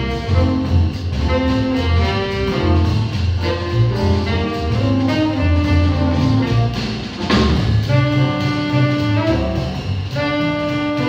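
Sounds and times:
drum kit: 0:00.0 - 0:11.0
walking double bass: 0:00.0 - 0:11.0
saxophone long notes: 0:07.9 - 0:11.0.

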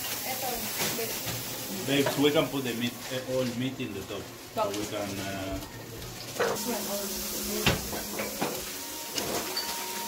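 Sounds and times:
steady hiss: 0:06.6 - 0:10.0.

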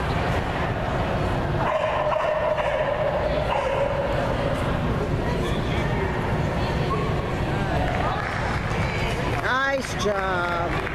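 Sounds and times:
dog barking: 0:01.7 - 0:04.2.

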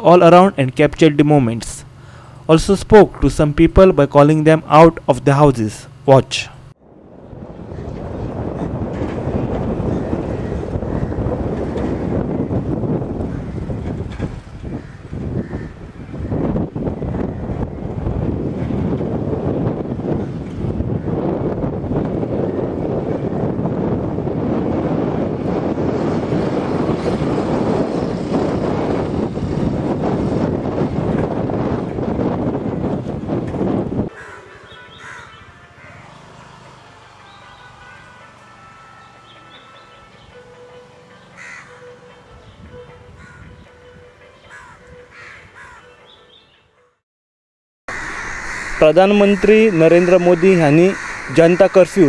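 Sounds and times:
wind buffeting microphone: 0:06.8 - 0:35.6, 0:42.3 - 0:45.8.

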